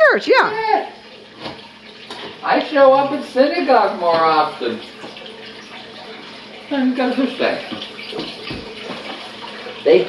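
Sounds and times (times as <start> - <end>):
water running steadily: 0.0 - 10.0.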